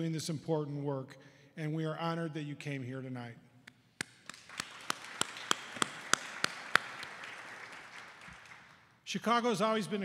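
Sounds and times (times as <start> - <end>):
close hand claps: 4.0 - 8.9
audience applause: 4.3 - 8.8.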